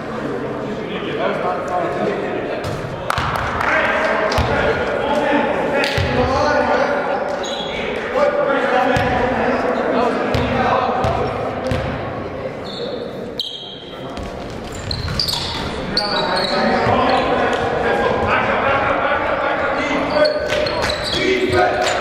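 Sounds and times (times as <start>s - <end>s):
voices of players and spectators: 0.0s - 22.0s.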